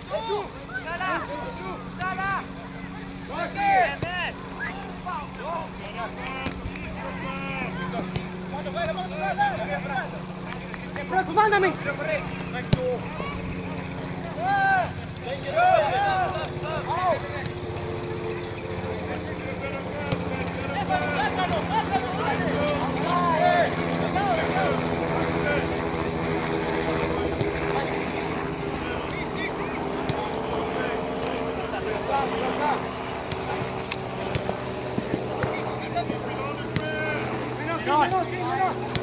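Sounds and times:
distant players shouting: 0.0 - 39.0
steady low hum: 0.0 - 39.0.

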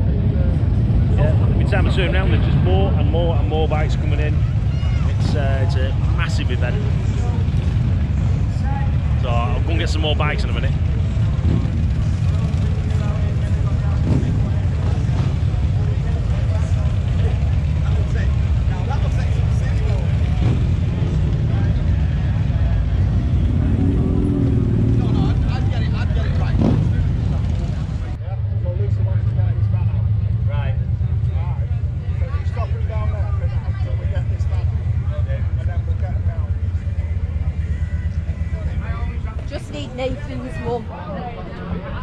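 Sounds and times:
crowd chatter: 0.0 - 42.0
motorcycle engines rumbling: 0.0 - 42.0.

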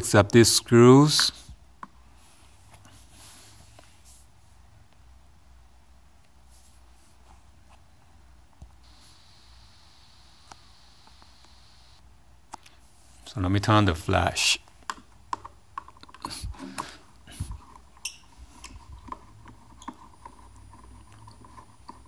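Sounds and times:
faint hiss: 8.6 - 14.7
faint high whine: 8.8 - 12.0.

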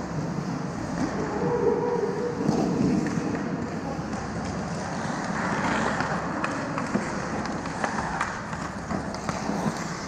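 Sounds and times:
skate blades scraping on ice: 0.0 - 10.0.

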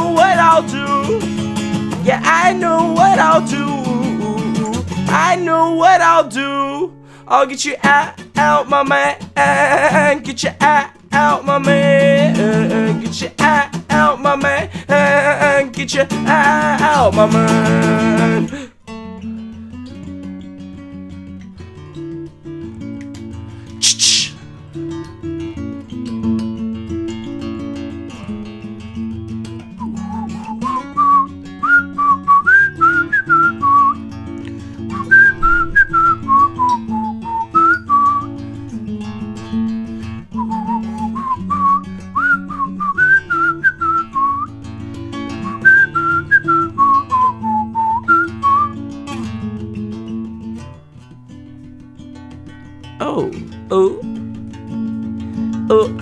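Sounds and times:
acoustic guitar: 0.0 - 56.0
brief sharp noise: 23.8 - 24.4, 35.1 - 36.5
person whistling a melody: 23.8 - 24.4, 29.7 - 34.2, 34.9 - 38.4, 40.3 - 49.0.

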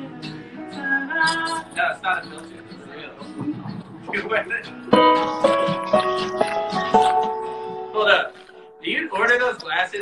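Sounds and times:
guitars strummed and picked: 0.0 - 8.7
voices talking: 0.2 - 6.0.

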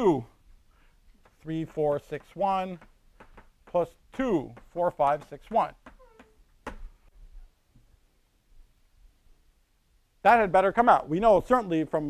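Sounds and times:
person speaking: 0.0 - 0.4, 1.2 - 3.0, 3.6 - 6.4
chalk tapping on blackboard: 1.1 - 6.8.

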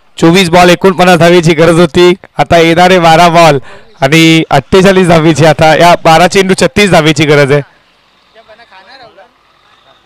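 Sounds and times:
man commentating loudly: 0.2 - 7.7
faint distant voices: 3.5 - 10.0.

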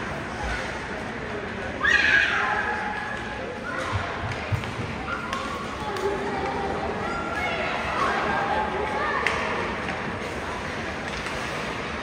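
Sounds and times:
low crowd chatter: 0.0 - 12.0.

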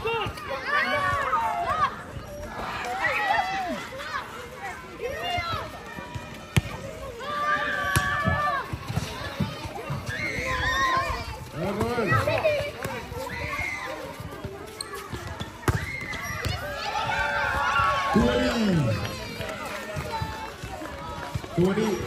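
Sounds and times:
people calling and shouting: 0.0 - 22.0.

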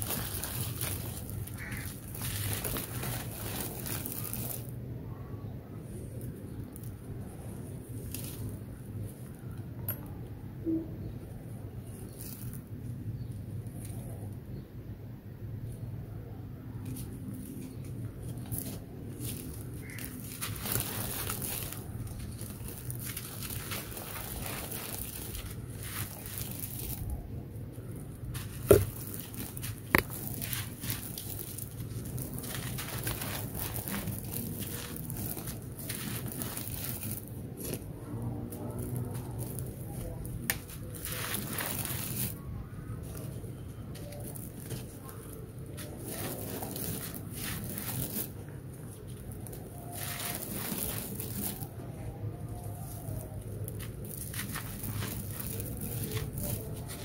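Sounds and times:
dirt crushed and crumbling in hands: 0.0 - 4.8, 5.4 - 10.1, 11.0 - 14.6, 16.7 - 57.0
grains and dust sifting down: 0.0 - 4.8, 17.2 - 57.0
dirt crumbling between hands: 17.8 - 37.9.

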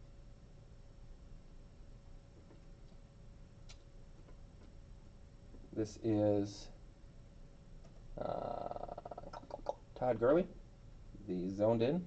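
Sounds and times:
person saying uh: 8.2 - 9.7.

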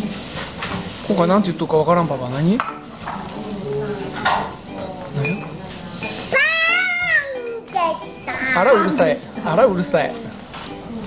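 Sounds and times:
cutlery clinking against bowls: 0.0 - 1.3, 2.3 - 11.0.

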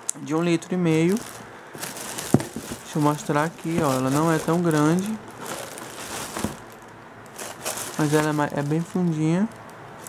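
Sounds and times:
plastic bag crinkling: 0.6 - 10.0.

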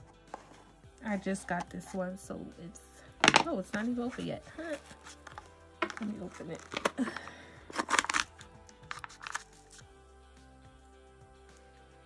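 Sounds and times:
faint background music: 0.0 - 12.0
plastic jar cracking open: 4.7 - 9.8.

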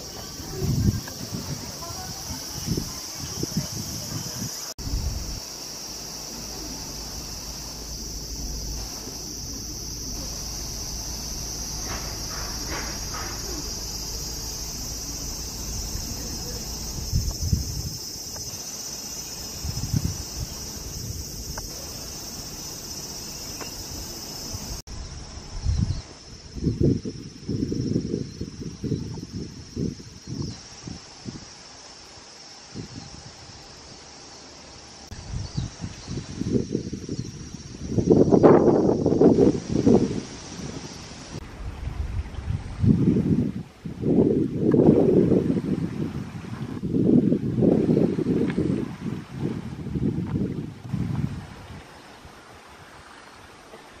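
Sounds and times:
wind buffeting microphone: 0.0 - 31.6, 35.1 - 54.0
high-pitched insect chorus: 0.0 - 54.0.

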